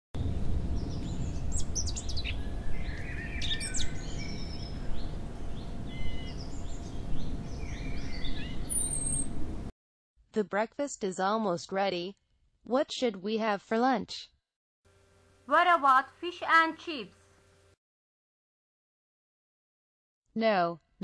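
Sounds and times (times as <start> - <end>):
low background rumble: 0.2 - 9.7
birds chirping and singing: 0.8 - 9.4.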